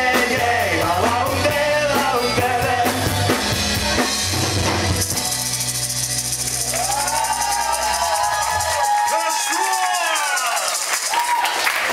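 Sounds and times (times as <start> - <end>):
live band music: 0.0 - 11.4
shaken percussion beat: 0.0 - 11.9.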